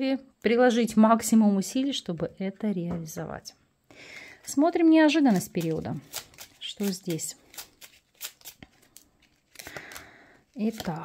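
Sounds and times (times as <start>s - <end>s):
cards clicking while shuffled: 5.3s - 11.0s
cards sliding and rustling: 5.3s - 11.0s.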